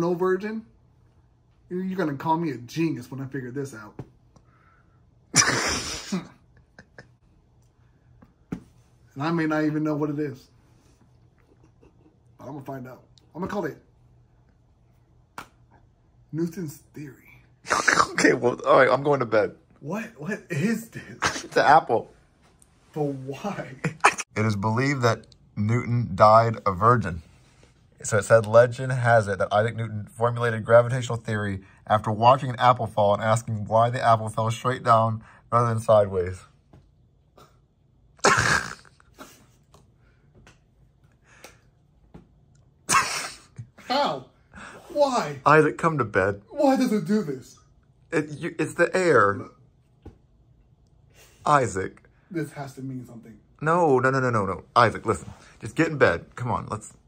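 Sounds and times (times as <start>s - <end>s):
man speaking: 22.9s - 27.3s, 43.8s - 49.6s, 51.4s - 57.0s.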